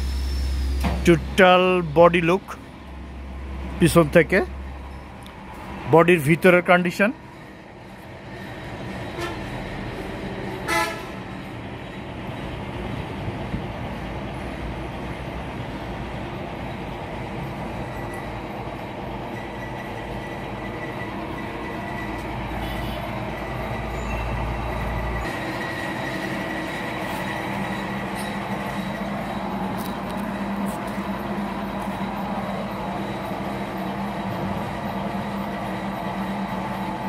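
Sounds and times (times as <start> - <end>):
traffic noise: 0.0 - 37.0
car horn toot: 9.2 - 9.4, 10.7 - 11.2.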